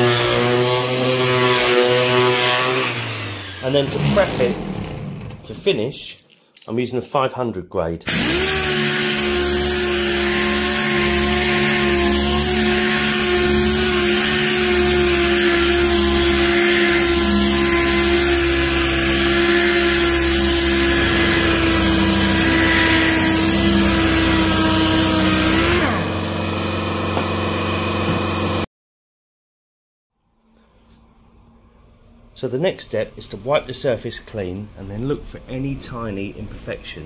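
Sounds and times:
pneumatic sander whining: 0.0s - 5.5s, 8.1s - 28.7s.

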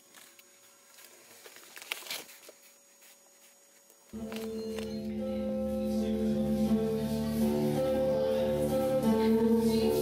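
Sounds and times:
low room hiss: 0.0s - 10.0s
camera handling rustling: 1.4s - 2.6s.

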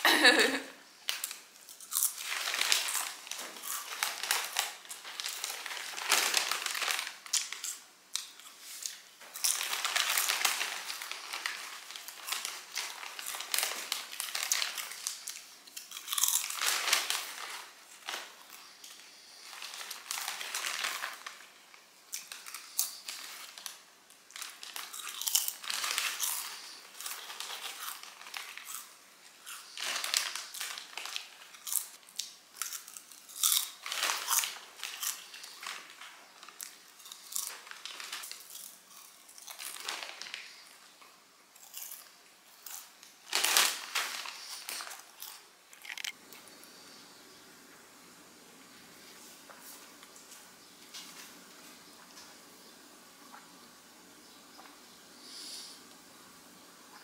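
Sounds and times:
plastic snack bag crinkling: 0.0s - 46.4s
crunchy chewing: 1.2s - 17.6s, 24.3s - 40.6s, 41.6s - 43.2s, 44.2s - 46.4s.

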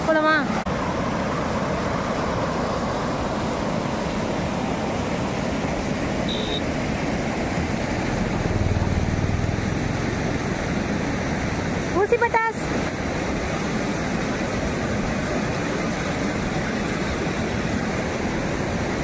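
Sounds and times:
river water rushing over rocks: 0.0s - 19.0s
short high tone: 6.3s - 6.6s.

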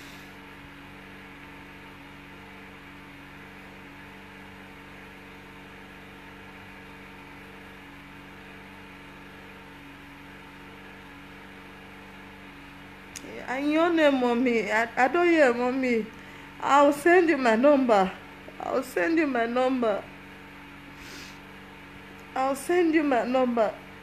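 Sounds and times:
low hum of constant tones: 0.0s - 24.0s.

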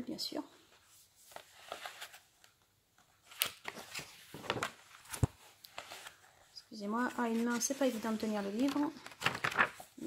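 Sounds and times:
book pages rustling: 0.6s - 10.0s.

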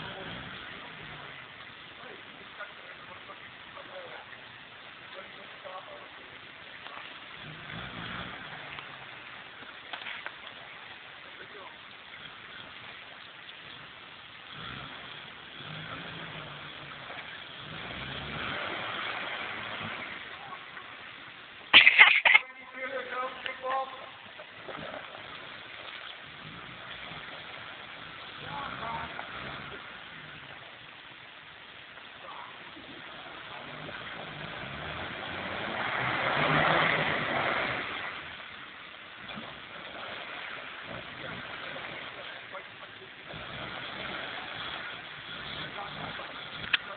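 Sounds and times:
steady hiss: 0.0s - 46.9s
car engine revving: 7.3s - 9.3s, 14.5s - 20.6s, 32.8s - 38.5s, 39.2s - 46.9s.

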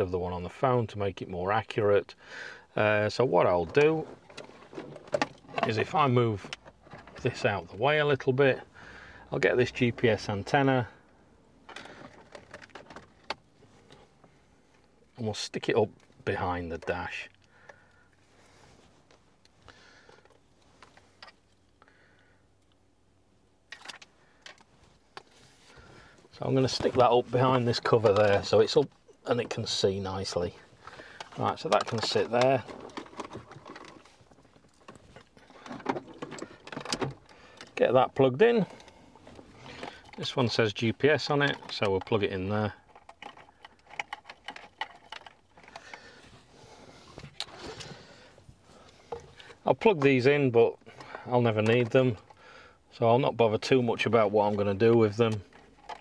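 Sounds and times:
cable clicks and rustling: 3.2s - 8.6s, 9.3s - 18.2s, 23.6s - 52.4s, 53.3s - 56.0s.

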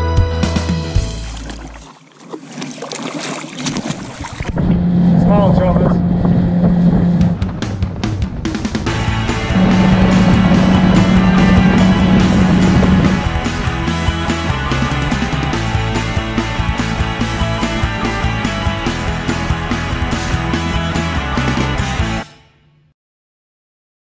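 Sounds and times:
music: 0.0s - 1.4s, 7.3s - 22.9s
boat motor humming: 3.3s - 22.2s.

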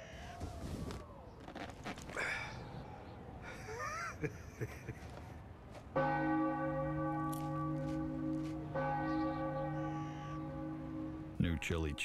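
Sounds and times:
large church bell ringing: 5.9s - 12.0s.

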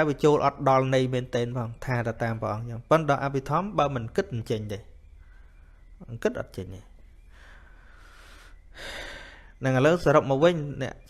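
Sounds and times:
man speaking: 0.0s - 5.0s, 6.0s - 7.0s, 9.6s - 11.0s.

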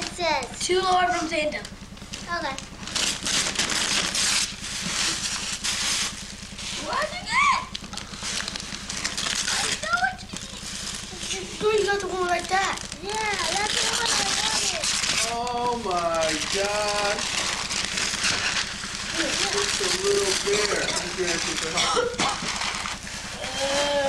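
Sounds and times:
wrapping paper tearing: 2.8s - 24.0s
child exclaiming: 6.8s - 7.7s, 9.5s - 10.7s, 11.4s - 14.8s, 23.4s - 24.0s.

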